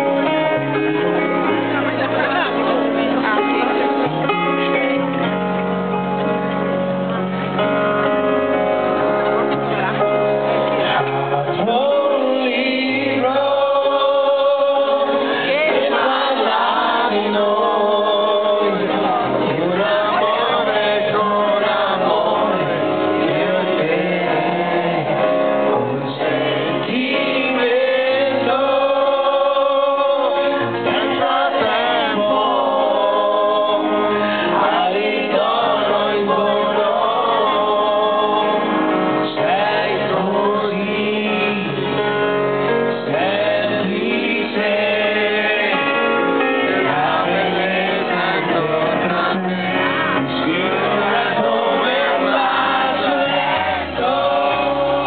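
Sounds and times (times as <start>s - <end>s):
live pop-rock band: 0.0s - 55.0s
men singing together: 11.5s - 55.0s.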